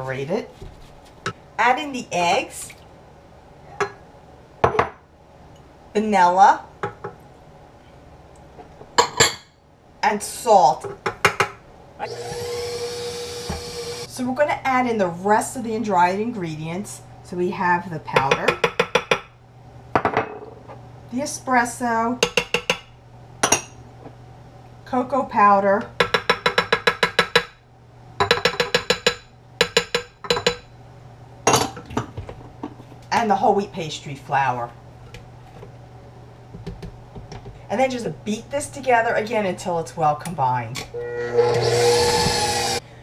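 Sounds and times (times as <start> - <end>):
stand mixer motor whine: 12.0 - 14.1, 41.0 - 42.8.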